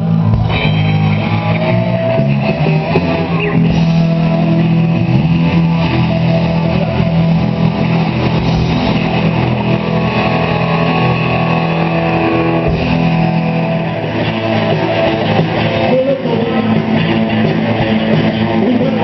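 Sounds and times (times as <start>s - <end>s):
rock band playing live: 0.0s - 19.0s.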